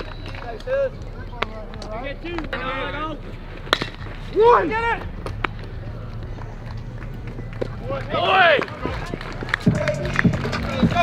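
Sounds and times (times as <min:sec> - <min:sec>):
outdoor ballpark background: 0:00.0 - 0:11.0.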